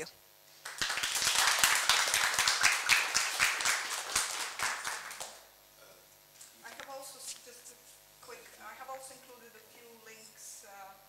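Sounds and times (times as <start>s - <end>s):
audience applauding: 0.6s - 5.4s.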